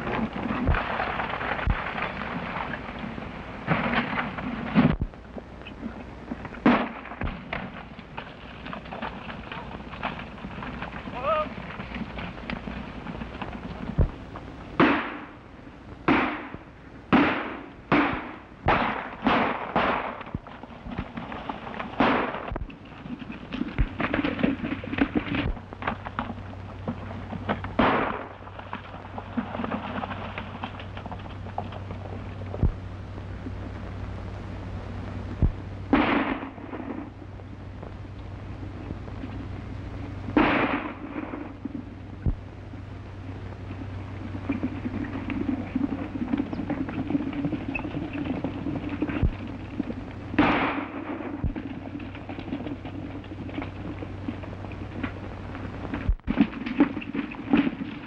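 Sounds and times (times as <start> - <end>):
galloping horses: 0.0 - 15.4, 16.1 - 34.0, 38.4 - 58.0
gunshots with echoing tail: 6.6 - 7.5, 14.8 - 15.3, 16.0 - 20.4, 22.0 - 22.6, 27.8 - 28.3, 35.9 - 37.1, 40.4 - 41.5, 50.4 - 51.6.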